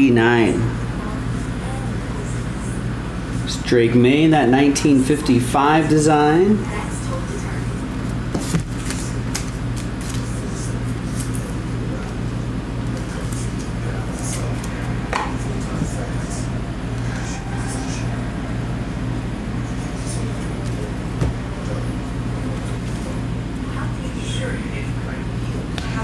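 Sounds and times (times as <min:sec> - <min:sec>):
low electrical hum: 0:00.0 - 0:26.0.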